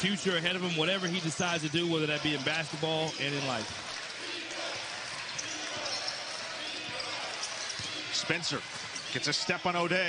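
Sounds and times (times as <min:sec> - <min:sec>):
crowd hubbub: 0:00.2 - 0:10.0.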